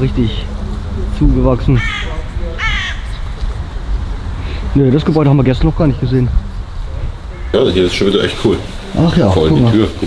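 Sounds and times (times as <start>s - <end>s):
crow cawing: 1.7s - 3.4s, 7.3s - 7.8s.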